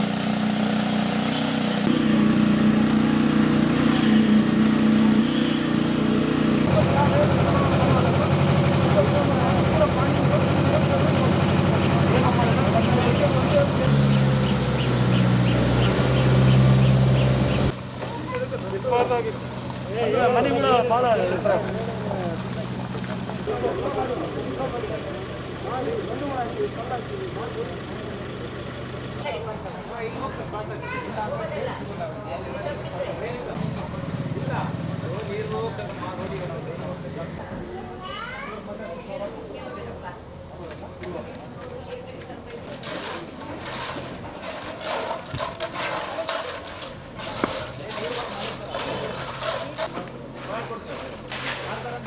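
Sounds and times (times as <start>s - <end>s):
low engine hum: 0.0s - 30.8s
tools scraping wet concrete: 0.2s - 2.0s, 3.8s - 6.3s, 42.6s - 52.0s
indistinct voices talking: 6.6s - 38.1s.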